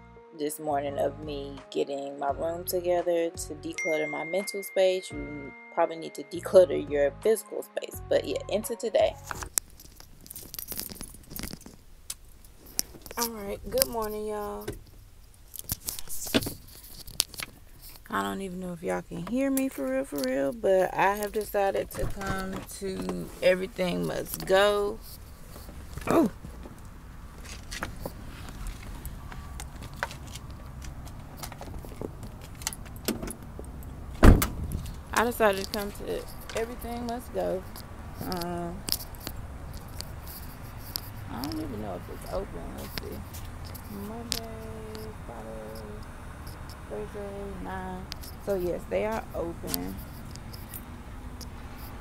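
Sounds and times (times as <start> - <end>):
car engine low rumble: 8.0 - 52.0
keys jingling: 9.4 - 11.8, 28.7 - 33.8, 34.6 - 41.2, 49.8 - 50.9.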